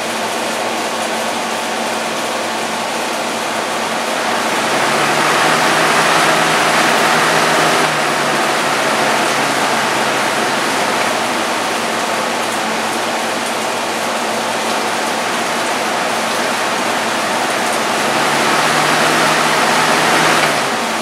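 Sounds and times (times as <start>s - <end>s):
box fan running: 1.8s - 21.0s.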